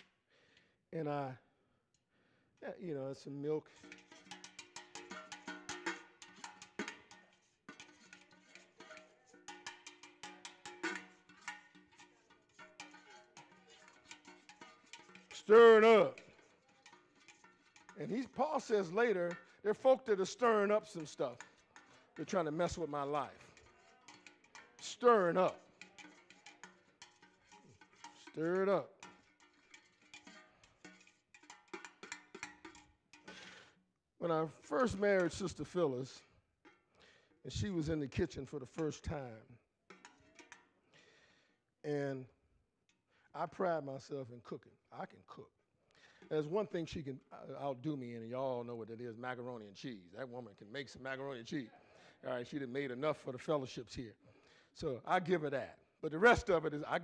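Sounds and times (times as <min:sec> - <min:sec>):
spoon knocking metal bowl: 0:03.7 - 0:33.7, 0:39.9 - 0:40.7.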